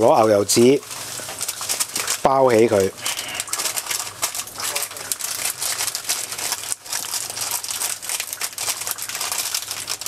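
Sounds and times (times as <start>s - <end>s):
parchment paper crinkling: 0.0s - 10.0s.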